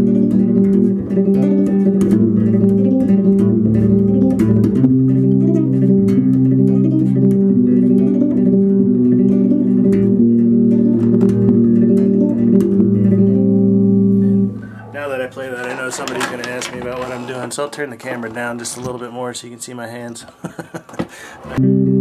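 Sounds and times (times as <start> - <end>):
electric bass plucked chords: 0.0 - 15.7, 21.5 - 22.0.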